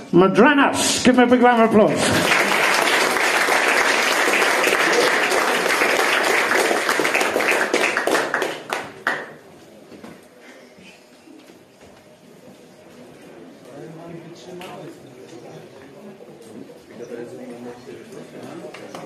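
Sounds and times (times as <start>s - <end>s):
audience applauding: 2.0s - 9.4s.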